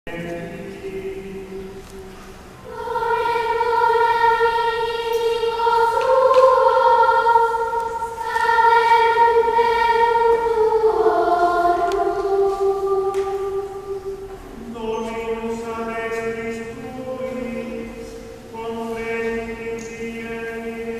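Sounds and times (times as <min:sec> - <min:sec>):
children's choir singing: 0:00.1 - 0:20.9.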